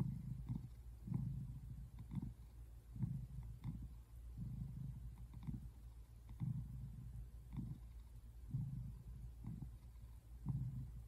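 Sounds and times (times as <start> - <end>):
cat purring: 0.0 - 11.0.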